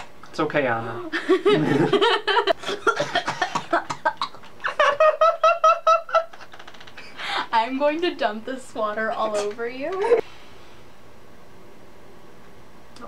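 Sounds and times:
man and woman laughing: 1.1s - 7.4s, 10.0s - 10.2s.

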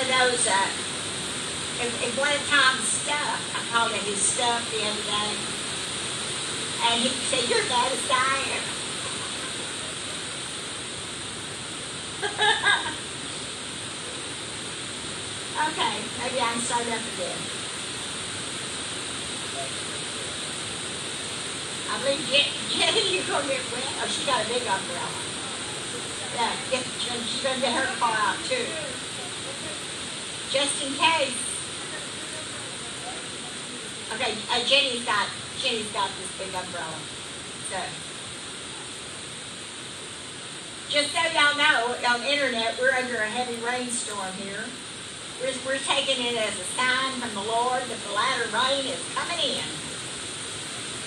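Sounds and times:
voices: 0.0s - 5.7s, 6.5s - 11.3s, 11.9s - 14.4s, 15.4s - 17.7s, 18.6s - 39.1s, 40.9s - 50.0s
heavy rain on a metal roof: 0.0s - 51.0s.

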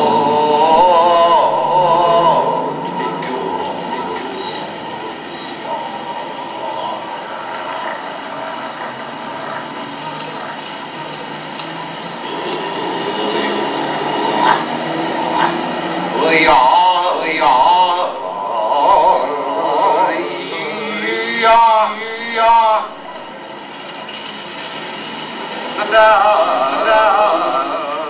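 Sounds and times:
man's voice: 0.0s - 4.4s, 12.0s - 23.1s, 25.7s - 28.0s
heavy traffic roar: 0.0s - 28.0s.

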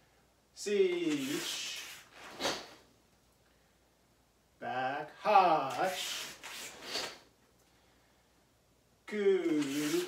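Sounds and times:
rustling of martial arts uniform: 1.0s - 2.9s.

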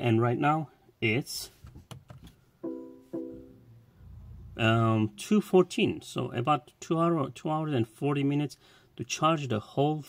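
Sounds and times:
car warning chime: 2.6s - 3.8s.

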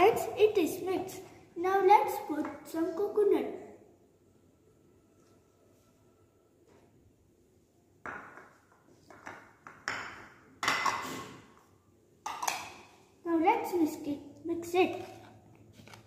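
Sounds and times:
ceramic bowls clinking on marble: 12.2s - 12.9s.

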